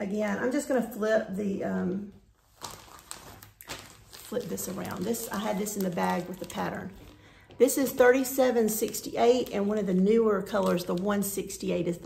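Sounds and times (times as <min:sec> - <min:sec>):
plastic bag rustling: 0:02.3 - 0:11.6.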